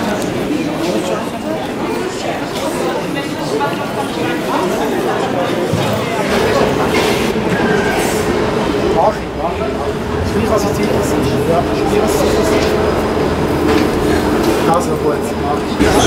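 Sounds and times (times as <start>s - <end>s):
people talking: 14.6s - 16.0s.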